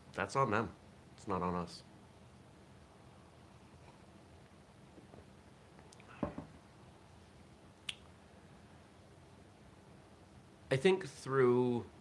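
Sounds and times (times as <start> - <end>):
mug soft thump: 6.2 - 6.6.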